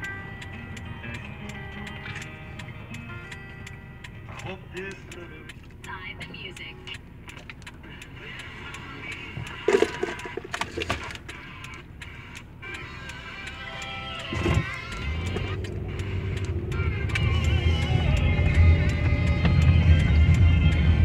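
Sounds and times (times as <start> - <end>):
clicks: 0.0 - 20.8
music from car speakers: 0.0 - 21.0.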